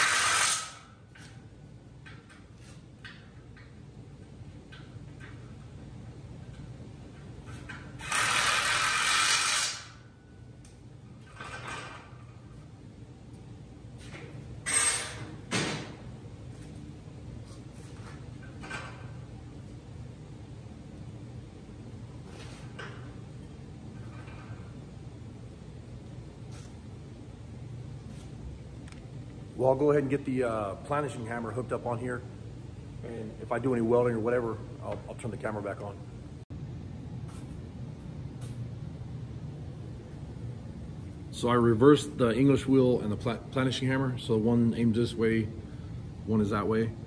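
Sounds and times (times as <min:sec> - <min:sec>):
low steady shop hum: 0:00.0 - 0:47.0.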